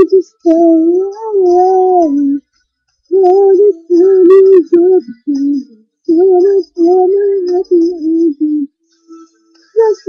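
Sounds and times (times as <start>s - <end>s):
girl singing unaccompanied: 0.0s - 2.4s, 3.1s - 8.7s, 9.7s - 10.0s.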